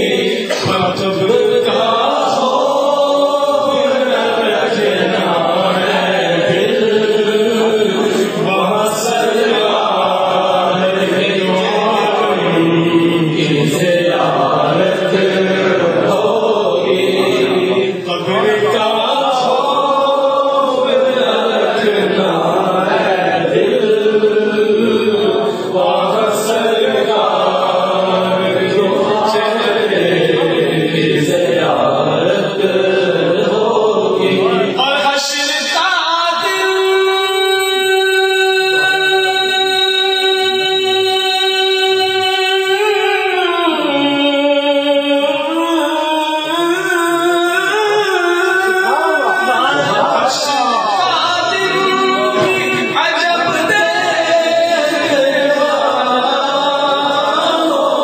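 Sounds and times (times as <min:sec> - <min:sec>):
men chanting in unison: 0:00.0 - 0:58.0.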